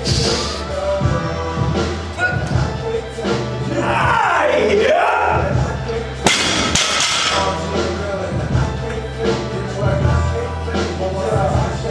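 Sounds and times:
barbell dropped on gym floor: 6.3 - 7.5.

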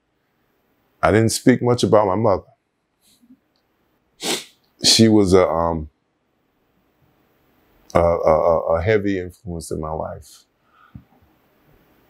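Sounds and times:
man speaking: 1.0 - 2.5, 4.2 - 5.9, 7.9 - 10.4
man sniffing: 4.2 - 4.6.

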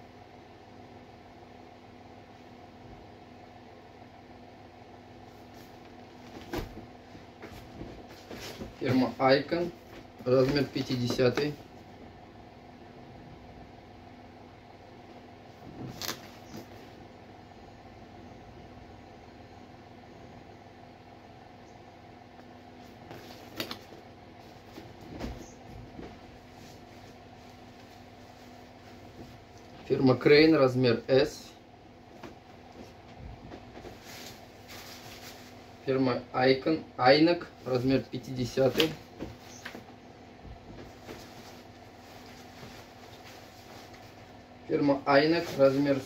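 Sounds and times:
room hum: 0.0 - 46.0
jacket rustling: 40.8 - 44.4.

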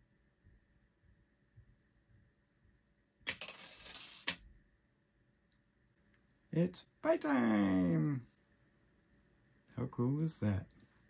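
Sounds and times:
plastic piece rattling down chute: 3.3 - 4.4.

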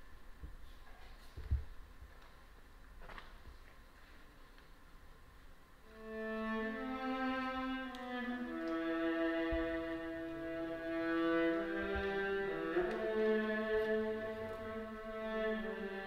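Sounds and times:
string orchestra playing chords: 5.8 - 16.0.

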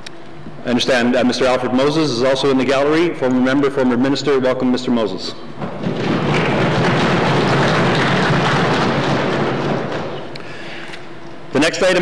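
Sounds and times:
crowd applauding: 5.6 - 10.4.

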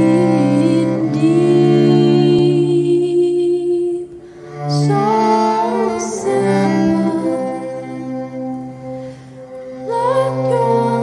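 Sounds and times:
fiddle: 0.0 - 11.0.

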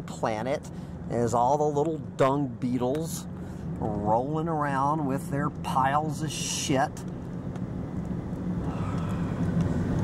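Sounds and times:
vehicle road and engine rumble: 0.0 - 10.0.

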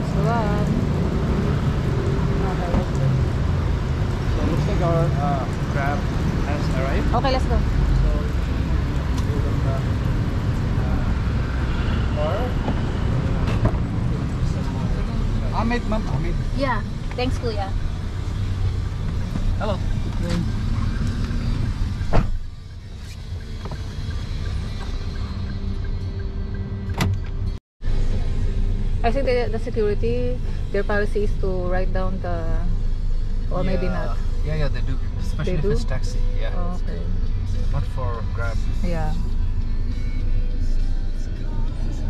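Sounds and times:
idling car rumble: 0.0 - 42.0
car door shutting: 22.0 - 22.5, 26.9 - 27.4.

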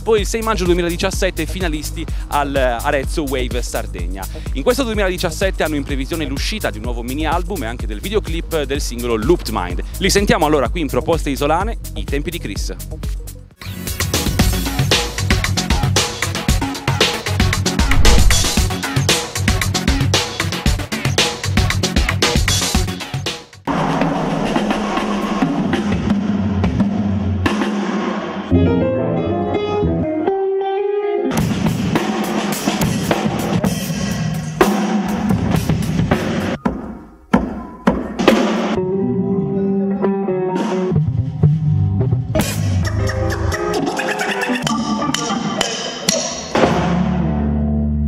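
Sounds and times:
funk band music: 28.5 - 33.8, 38.3 - 48.0.

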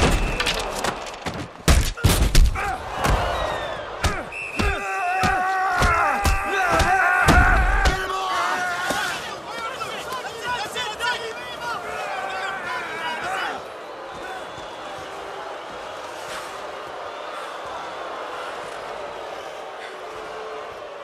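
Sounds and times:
arena crowd yelling: 0.0 - 21.0.

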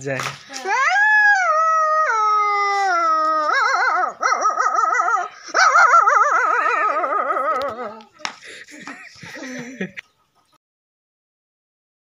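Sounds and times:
boy imitating dog howl: 0.5 - 8.1.

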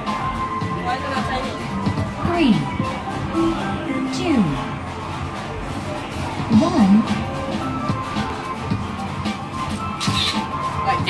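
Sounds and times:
background music with a beat: 0.0 - 11.0.

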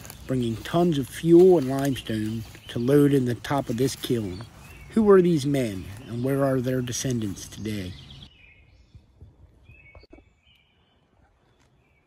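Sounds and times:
faint woodland ambience: 0.0 - 12.0
high bird chirp: 0.0 - 12.0.

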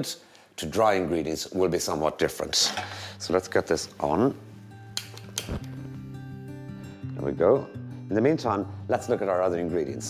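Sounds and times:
background music: 0.6 - 10.0.

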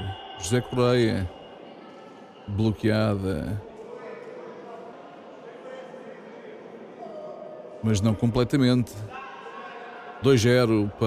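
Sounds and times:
man's voice close: 0.0 - 1.3, 2.5 - 3.6, 7.8 - 9.2, 10.2 - 11.0.

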